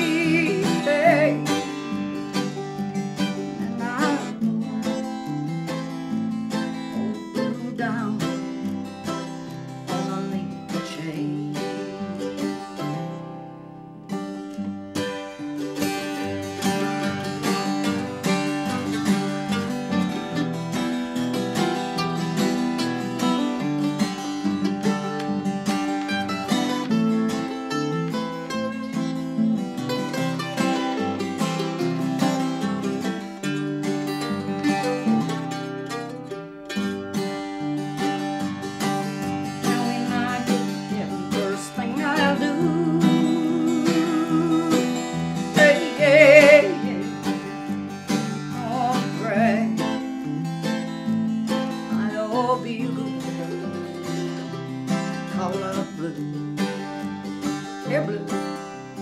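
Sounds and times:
person singing with vibrato: 0.0s - 1.9s, 3.6s - 4.5s, 6.9s - 8.6s, 9.7s - 12.0s, 39.5s - 47.4s, 48.4s - 50.8s, 51.9s - 54.3s, 55.2s - 56.4s, 57.8s - 58.5s
mandolin and acoustic guitar music: 0.0s - 59.0s.

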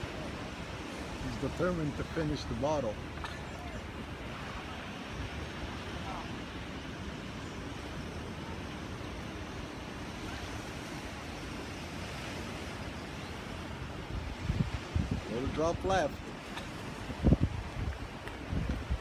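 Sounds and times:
surf washing on beach: 0.0s - 19.0s
wind on microphone: 0.0s - 19.0s.

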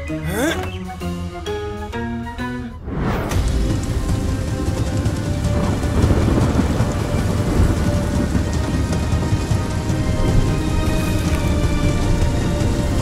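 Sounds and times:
low thunder rumble: 3.4s - 12.9s
heavy rain: 3.4s - 13.0s.

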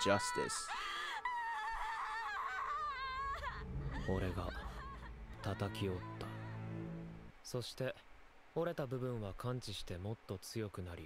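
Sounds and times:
young woman's high-pitched cry: 0.1s - 5.2s.

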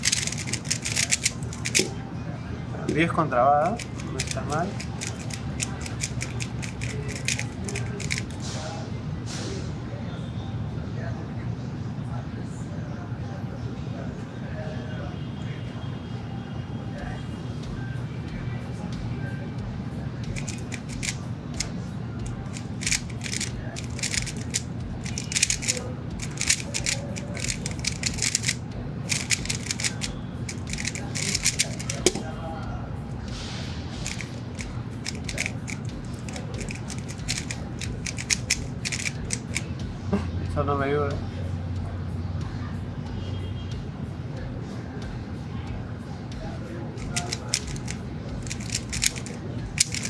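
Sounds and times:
plastic puzzle cube clicking: 0.0s - 1.9s, 3.6s - 8.4s, 20.3s - 21.7s, 22.3s - 32.2s, 34.0s - 39.7s, 47.0s - 50.0s
steady low hum: 0.0s - 2.9s, 19.6s - 40.1s.

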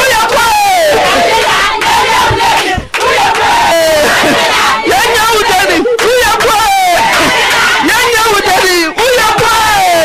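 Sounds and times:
crowd of women shouting and cheering: 0.0s - 10.0s.

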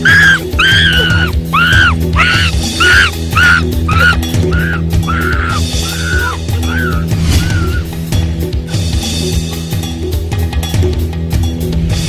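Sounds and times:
shrill cries: 0.0s - 8.0s.

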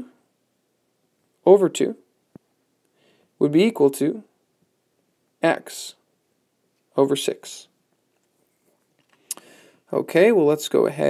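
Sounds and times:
man speaking: 1.4s - 2.1s, 3.4s - 4.3s, 5.4s - 6.1s, 6.9s - 7.8s, 9.9s - 11.0s
intake of breath: 2.9s - 3.4s, 9.2s - 9.9s.

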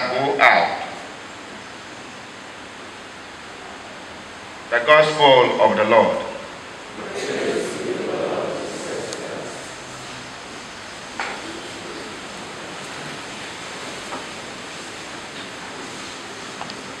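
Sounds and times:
room noise hiss: 0.0s - 17.0s.

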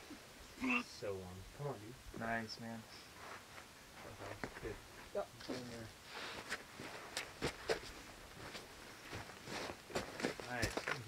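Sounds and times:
footsteps on gravelly ground: 5.5s - 11.0s.

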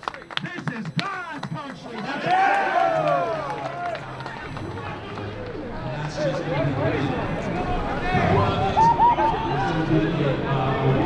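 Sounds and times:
low street hum: 0.0s - 11.0s.

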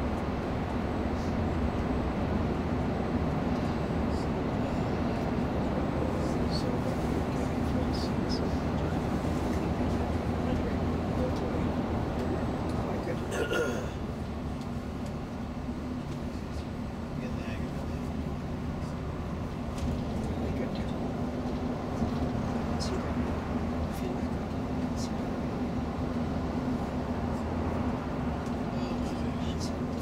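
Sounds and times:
coach engine and road drone: 0.0s - 30.0s
faint passenger voices: 0.1s - 30.0s.

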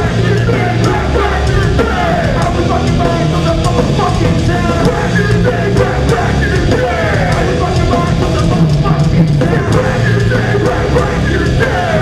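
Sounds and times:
drum kit: 0.0s - 12.0s
electric guitar: 0.0s - 12.0s
rapped shouted vocals: 0.0s - 12.0s.

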